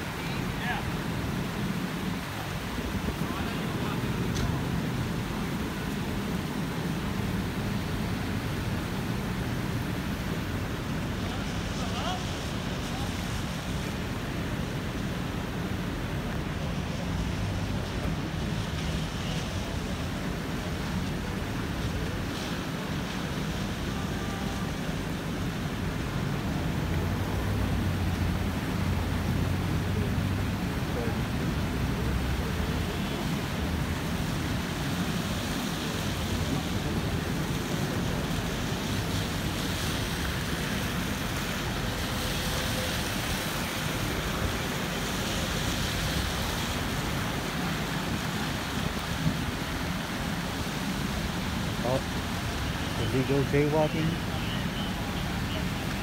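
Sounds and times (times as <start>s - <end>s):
emergency vehicles idling: 0.0s - 56.0s
traffic on wet street: 0.0s - 56.0s.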